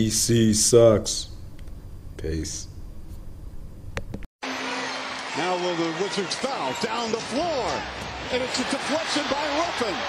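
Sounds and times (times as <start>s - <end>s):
arena crowd noise: 4.4s - 10.0s.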